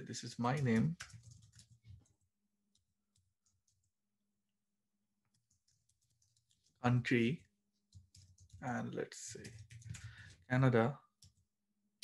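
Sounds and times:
computer keyboard typing: 0:00.4 - 0:04.0, 0:05.3 - 0:11.5.

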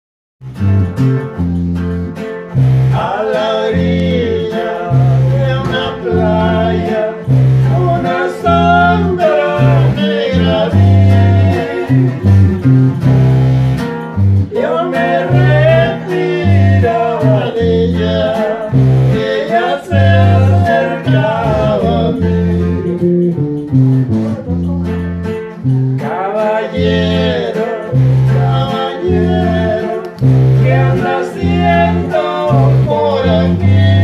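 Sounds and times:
electric bass guitar: 0:00.4 - 0:34.0
guitar lead melody: 0:00.4 - 0:34.0.

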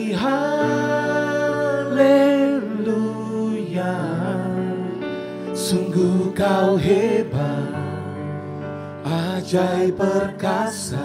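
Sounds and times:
lead singer singing: 0:00.0 - 0:11.0.

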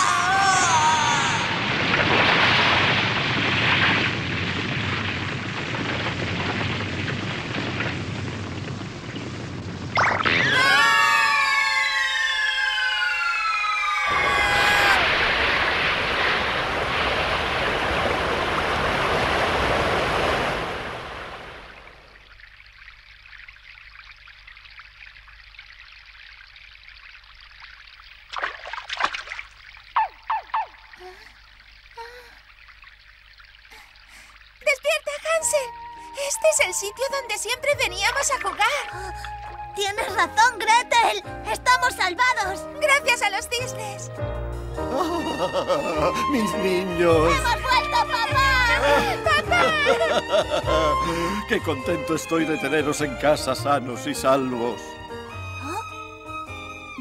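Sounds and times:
falling whistling tones: 0:09.9 - 0:15.8.

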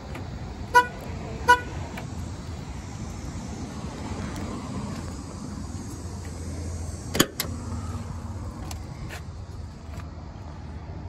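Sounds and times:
car door latch clicking: 0:07.1 - 0:07.5.

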